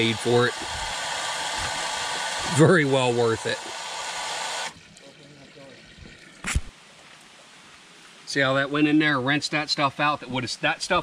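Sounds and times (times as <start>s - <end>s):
water jet spraying: 0.0s - 4.8s
water trickling: 0.0s - 10.0s.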